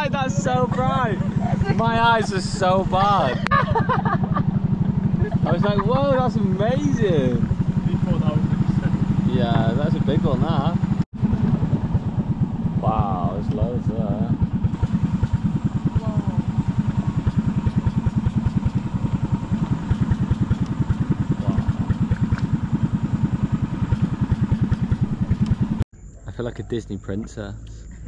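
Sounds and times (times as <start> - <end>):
boat engine running: 0.0 - 28.0.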